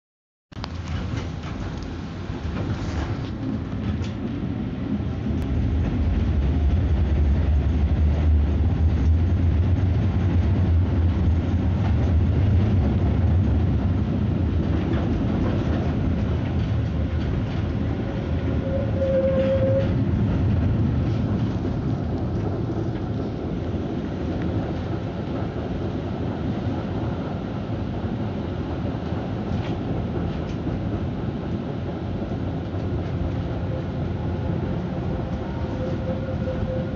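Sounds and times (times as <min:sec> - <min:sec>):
tram wheels rumbling on rail: 0:00.6 - 0:36.9
brief tone: 0:35.7 - 0:36.9.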